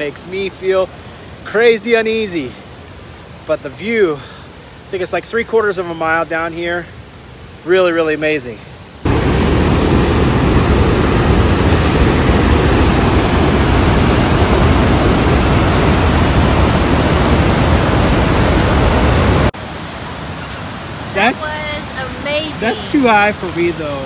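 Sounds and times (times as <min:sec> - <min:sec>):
waterfall rushing: 0:00.0 - 0:24.0
water washing: 0:09.1 - 0:19.6.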